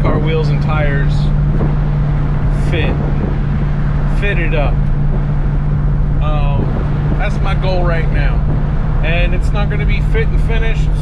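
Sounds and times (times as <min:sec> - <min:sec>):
constant hum: 0:00.0 - 0:11.0
engine and road noise drone: 0:00.0 - 0:11.0.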